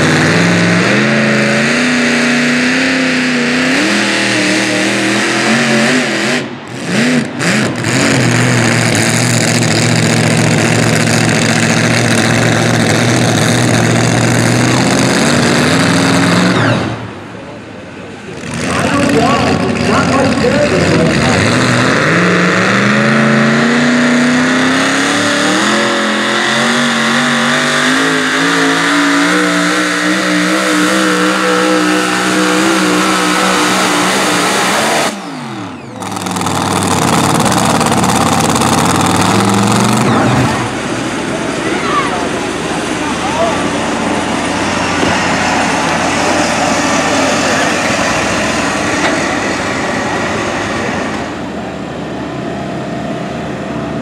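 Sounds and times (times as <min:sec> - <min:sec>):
truck engine at high revs: 0:00.0 - 0:54.0.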